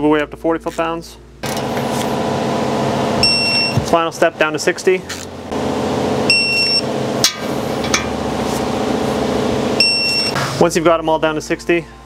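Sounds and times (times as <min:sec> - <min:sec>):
steady buzzing hum: 0:01.4 - 0:10.6
torque wrench beep: 0:03.2 - 0:03.8, 0:06.3 - 0:06.8, 0:09.8 - 0:10.4.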